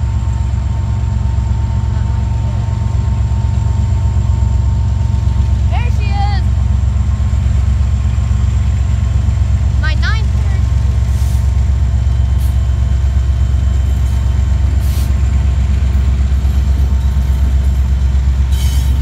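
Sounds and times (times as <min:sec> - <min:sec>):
diesel locomotive engines rumbling: 0:00.0 - 0:19.0.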